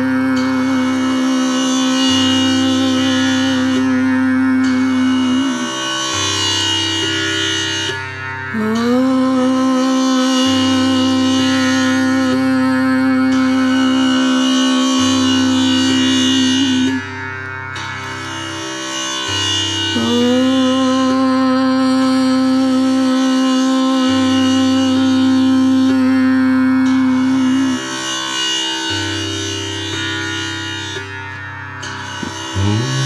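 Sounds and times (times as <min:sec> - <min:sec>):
tanpura drone: 0:00.0 - 0:33.0.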